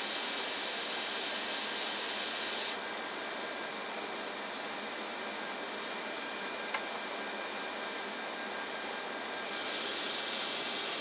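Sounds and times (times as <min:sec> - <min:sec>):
high hiss: 0:00.0 - 0:02.8, 0:09.4 - 0:11.0.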